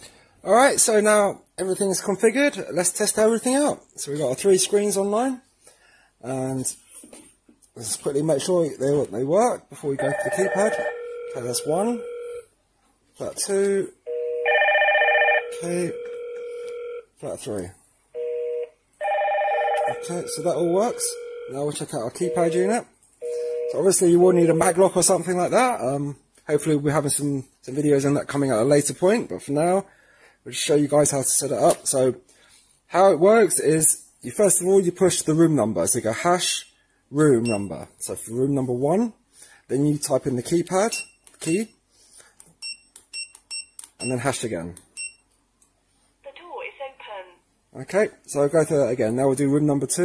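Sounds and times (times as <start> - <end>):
intercom monitor ringtone: 10.0 - 12.4, 14.1 - 17.1, 18.2 - 24.5
keypad beeps: 42.6 - 44.2.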